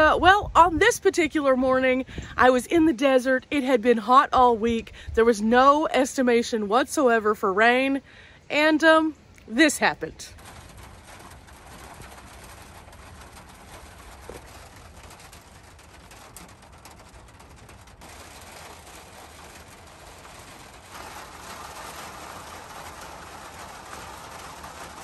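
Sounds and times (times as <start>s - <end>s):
rain pattering: 0.0s - 25.0s.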